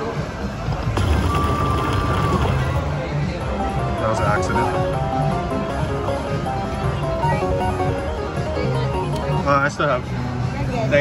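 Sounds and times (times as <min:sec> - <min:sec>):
low casino hum: 0:00.4 - 0:10.6
slot machine click: 0:01.0 - 0:05.0, 0:08.4 - 0:09.5
slot machine steady tone: 0:01.0 - 0:09.9.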